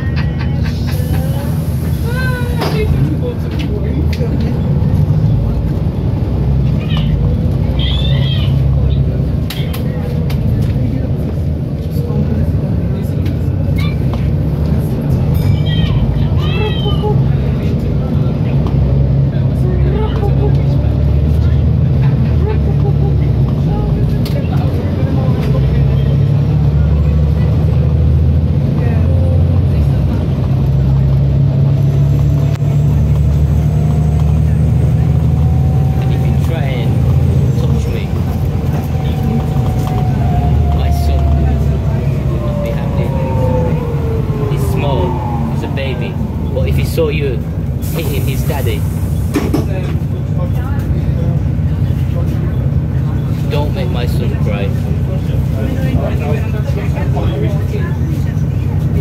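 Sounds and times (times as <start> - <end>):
bus diesel engine rumble: 0.0 - 59.0
rising engine whine: 29.0 - 49.3.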